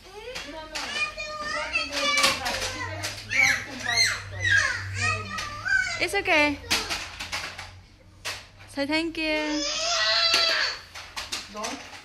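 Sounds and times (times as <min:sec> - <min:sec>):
children calling out and squealing: 0:00.5 - 0:07.1, 0:09.4 - 0:10.9.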